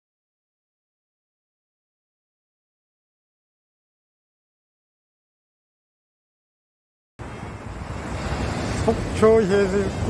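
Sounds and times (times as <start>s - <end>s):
sea surf breaking: 7.2s - 10.0s
wind rumbling on microphone: 7.2s - 10.0s.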